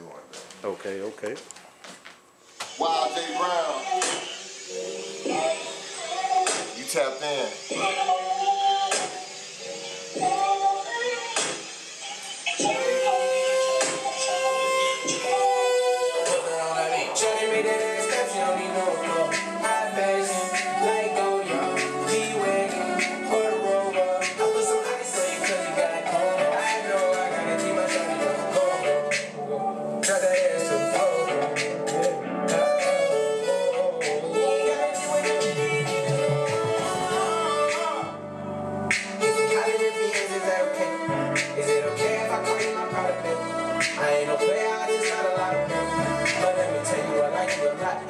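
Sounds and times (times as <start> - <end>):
violin melody: 12.6 - 29.9, 32.1 - 48.0
backing track drum beat: 35.0 - 38.0, 41.3 - 41.6, 44.9 - 47.9
hip-hop drum beat and bass: 35.0 - 38.0, 41.3 - 43.1.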